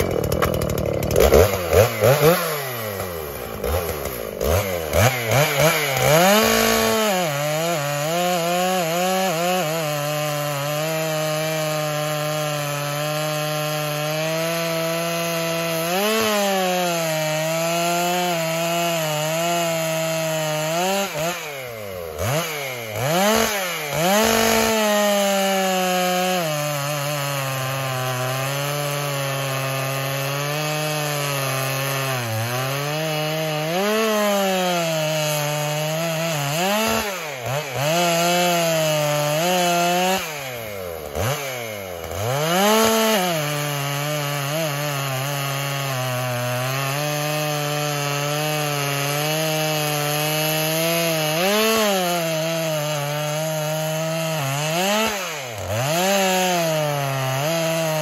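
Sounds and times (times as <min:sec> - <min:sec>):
chainsaw cutting log: 0:00.0 - 0:58.0.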